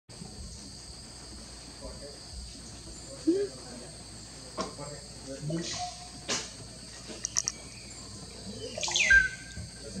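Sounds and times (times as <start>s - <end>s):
insects chirring: 0.1s - 10.0s
bird calls: 6.9s - 10.0s
quick high bird chirps: 8.6s - 9.6s.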